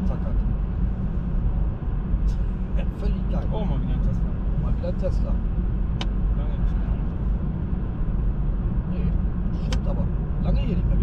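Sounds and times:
road and tyre rumble: 0.0s - 11.0s.

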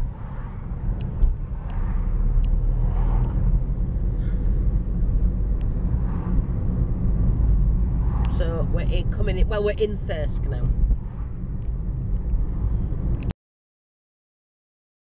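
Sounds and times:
car engine and tyre rumble: 0.0s - 13.3s.

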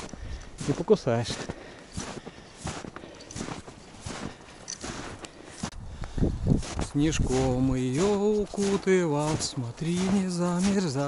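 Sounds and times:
footsteps in snow: 0.0s - 11.0s.

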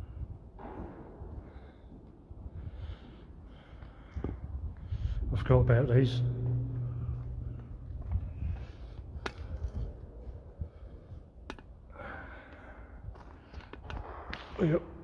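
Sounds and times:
low rumble: 0.0s - 11.4s
man breathing: 1.3s - 5.3s, 6.4s - 13.8s.

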